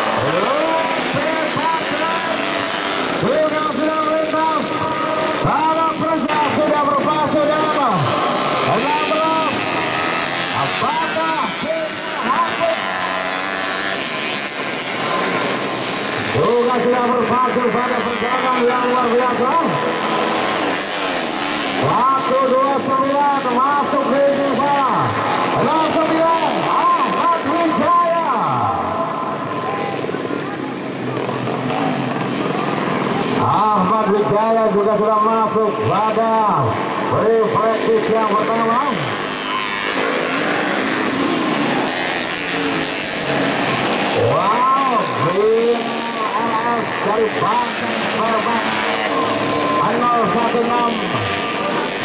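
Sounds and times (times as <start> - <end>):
dirt bike engines revving: 0.0 - 52.0.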